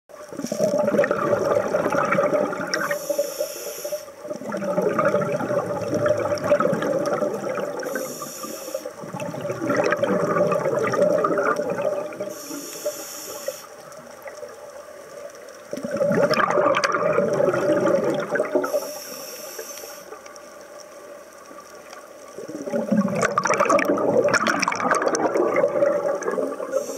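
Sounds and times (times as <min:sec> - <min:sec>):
bubbling exhalations underwater: 0:00.3 - 0:03.0, 0:04.3 - 0:08.2, 0:09.0 - 0:12.3, 0:15.7 - 0:18.8, 0:22.4 - 0:26.9
regulator inhalation hiss: 0:02.7 - 0:04.3, 0:07.7 - 0:09.1, 0:12.2 - 0:13.9, 0:18.6 - 0:20.3, 0:26.6 - 0:26.9.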